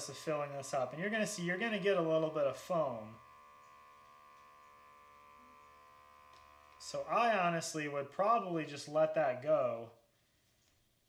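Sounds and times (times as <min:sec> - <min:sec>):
beer dispenser electric hum: 0:00.0 - 0:10.1.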